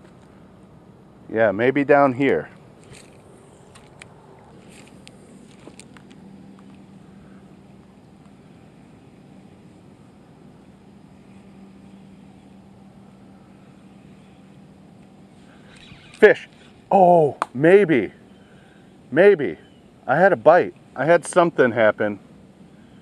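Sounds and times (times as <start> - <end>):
faint low hum: 0.0 - 23.0
fishing reel clicks: 15.7 - 16.8.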